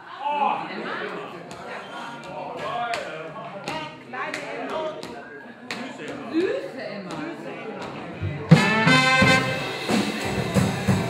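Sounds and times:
indistinct talking: 0.0 - 11.0.

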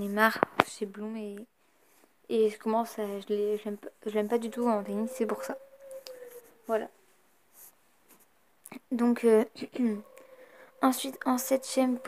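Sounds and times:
woman speaking: 0.0 - 1.5, 2.3 - 5.6, 6.7 - 7.0, 8.7 - 10.2, 10.8 - 12.0
faint room noise: 0.0 - 12.0.

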